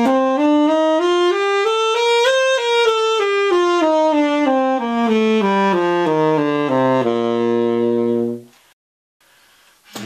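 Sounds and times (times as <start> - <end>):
saxophone long low note: 0.0 - 8.5.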